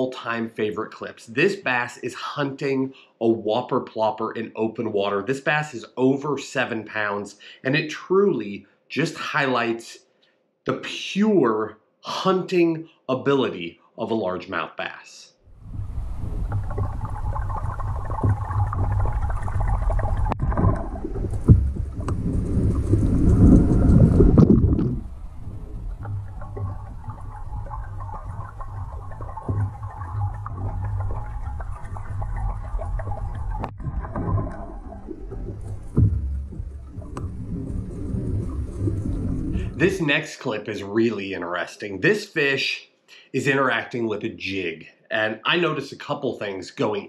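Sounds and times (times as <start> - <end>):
underwater rumble of moving water: 15.5 - 40.0
sharp knocks: 20.4 - 22.2, 35.8 - 37.3.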